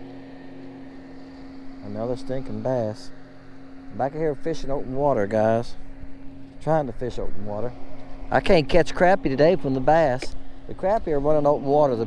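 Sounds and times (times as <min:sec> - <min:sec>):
electric motor humming: 0:00.0 - 0:12.0.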